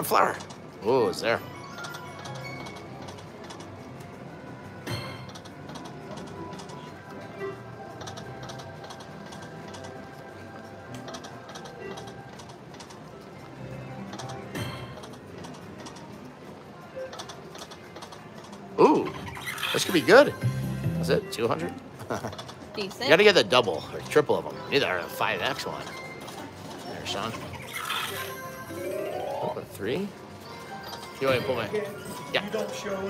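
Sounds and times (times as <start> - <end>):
slot machine game music: 0.0 - 10.9, 19.3 - 22.0, 22.8 - 33.0.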